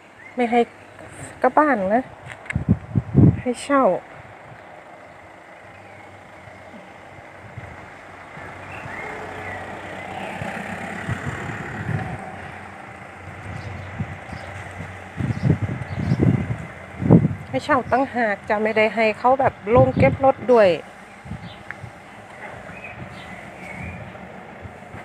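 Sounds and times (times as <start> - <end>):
motor vehicle passing: 0.0 - 25.0.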